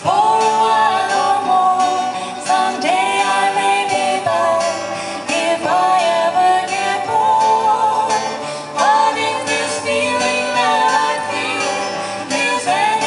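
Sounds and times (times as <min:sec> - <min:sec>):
plucked string instruments: 0:00.0 - 0:13.0
strummed acoustic guitar: 0:00.0 - 0:13.0
voices singing folk song: 0:00.0 - 0:13.0.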